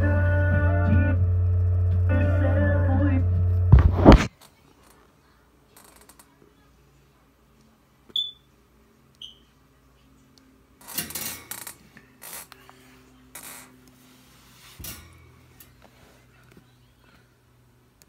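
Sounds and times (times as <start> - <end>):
plastic case rustling scrapes: 3.8 - 4.3.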